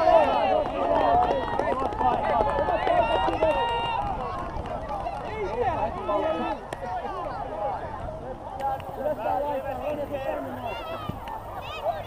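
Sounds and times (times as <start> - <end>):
children shouting: 9.2 - 12.0.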